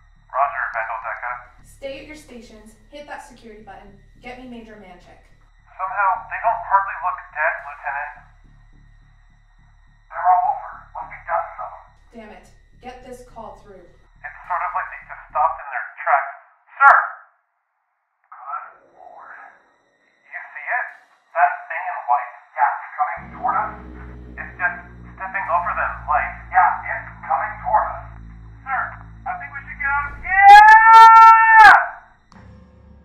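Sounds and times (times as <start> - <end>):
low pulsing music: 0.0 - 15.6, 23.2 - 33.0
voices over two-way radio: 0.4 - 1.4, 5.8 - 8.1, 10.1 - 11.8, 14.2 - 17.1, 20.3 - 31.9.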